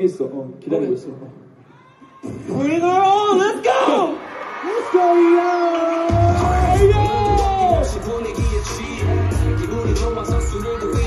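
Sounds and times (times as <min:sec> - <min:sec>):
man shouting through pa: 0:06.1 - 0:07.9.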